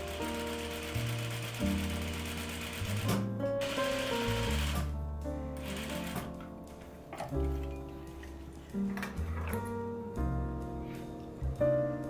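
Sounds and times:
sewing machine running: 0.0s - 4.9s, 5.6s - 6.3s
background music: 0.0s - 12.0s.

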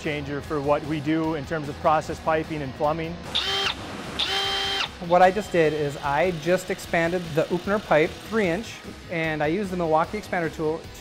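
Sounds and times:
cordless expander tool whining: 3.3s - 9.0s.

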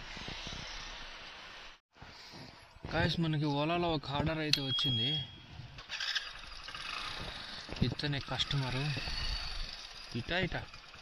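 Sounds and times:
motorcycle engine road and wind noise: 2.8s - 11.0s.

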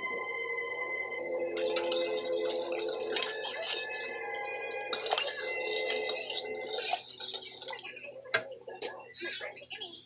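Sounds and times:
spoon scraping and clinking in pot: 1.5s - 9.0s.

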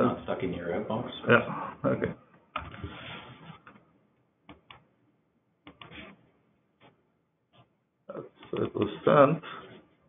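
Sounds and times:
computer mouse clicks: 5.6s - 6.0s.

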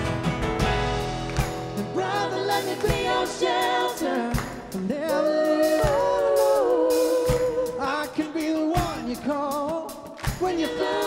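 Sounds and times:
drum hits: 0.0s - 5.0s, 8.4s - 11.0s
worship band playing: 0.0s - 11.0s.

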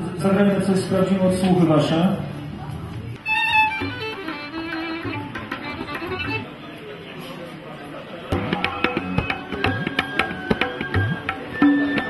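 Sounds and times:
hand drum strikes: 3.8s - 6.5s, 8.3s - 12.0s.

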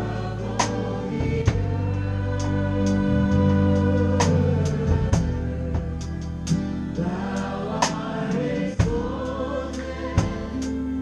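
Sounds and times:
group singing: 0.0s - 11.0s
worship band music: 0.0s - 11.0s.

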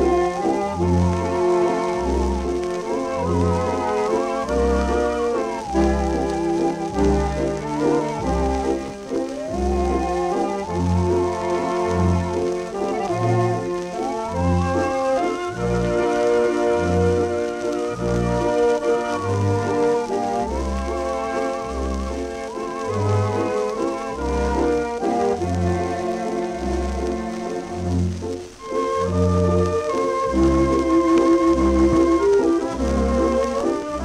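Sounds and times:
dance orchestra waltz: 0.0s - 34.0s
long held brass notes: 0.0s - 34.0s
record surface hiss and crackle: 0.0s - 34.0s.

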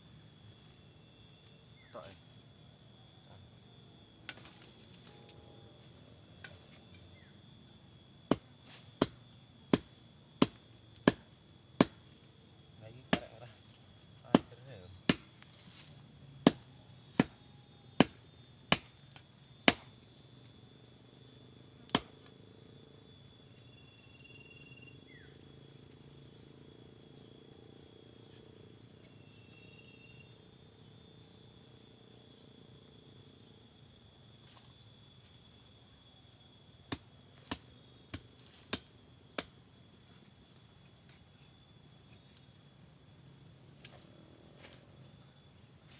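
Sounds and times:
insects droning: 0.0s - 45.9s
hand tool striking soil and roots: 4.3s - 4.7s, 8.3s - 12.0s, 13.0s - 13.4s, 14.2s - 15.5s, 16.4s - 17.4s, 18.0s - 20.0s, 21.9s - 22.2s, 36.9s - 39.6s.

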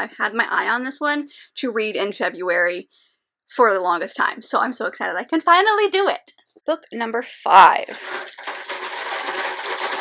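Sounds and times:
small items shuffling: 7.9s - 10.0s.

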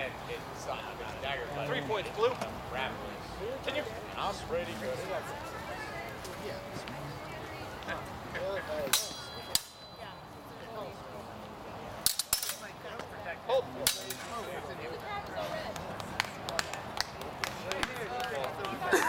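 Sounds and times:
murmur of onlookers' voices: 0.0s - 19.0s
steel swords clashing: 8.8s - 10.1s, 12.0s - 12.8s, 13.8s - 14.4s
sword blade ringing: 8.9s - 10.0s.

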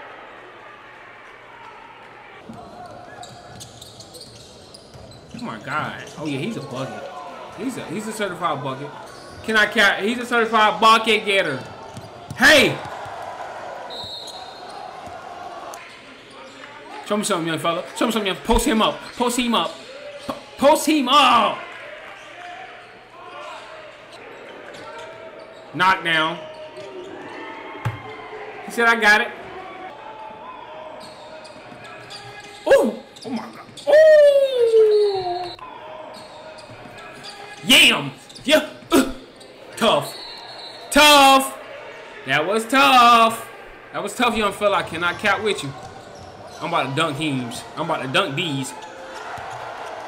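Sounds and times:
crowd chattering in a hall: 6.1s - 10.1s
man exclaiming oh in amazement: 33.9s - 35.6s.

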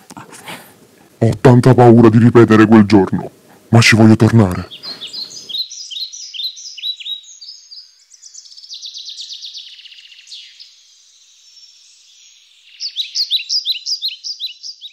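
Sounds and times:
small birds chirping: 3.5s - 14.9s
buzzy bird trill: 4.5s - 14.9s.

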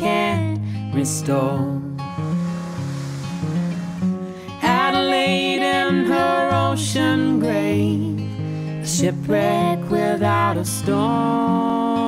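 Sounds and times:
person singing: 0.0s - 2.1s, 4.4s - 12.0s
acoustic guitar chords: 0.0s - 12.0s
ocean surf: 2.1s - 6.3s.

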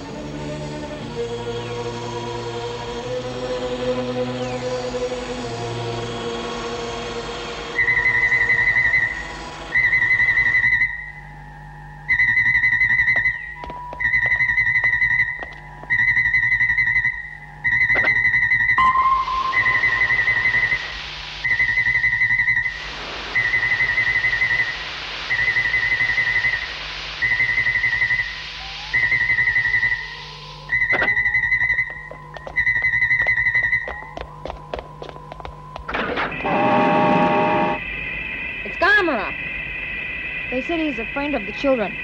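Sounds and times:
steady electronic tone and hum: 0.0s - 42.0s
buzzing electronic tone: 5.6s - 34.6s, 35.8s - 42.0s
high electronic beep: 16.0s - 22.7s, 36.2s - 39.4s
hiss: 19.5s - 30.8s.

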